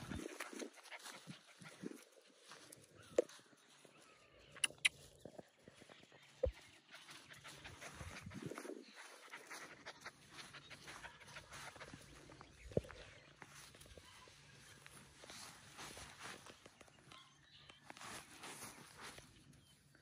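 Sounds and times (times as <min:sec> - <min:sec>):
puppy panting: 0:00.0 - 0:02.3, 0:06.4 - 0:12.8
puppy scampering in grass: 0:00.0 - 0:03.9.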